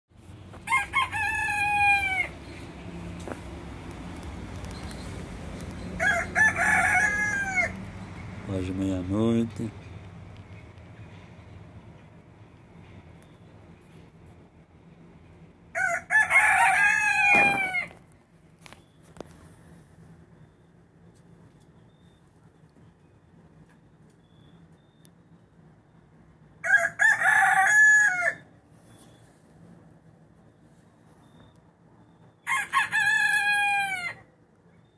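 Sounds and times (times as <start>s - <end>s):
rooster crowing: 0.6s - 2.5s, 6.0s - 7.9s, 15.7s - 18.0s, 26.6s - 28.6s, 32.4s - 34.3s.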